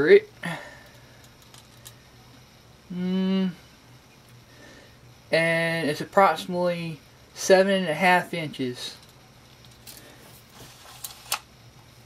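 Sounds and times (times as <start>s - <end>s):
low steady hum: 0.0s - 12.0s
man humming: 2.9s - 3.7s.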